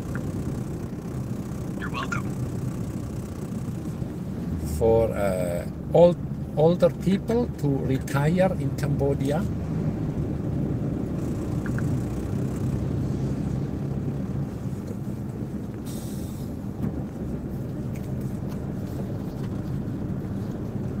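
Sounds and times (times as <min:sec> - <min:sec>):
vehicle engine and road rumble: 0:00.0 - 0:21.0.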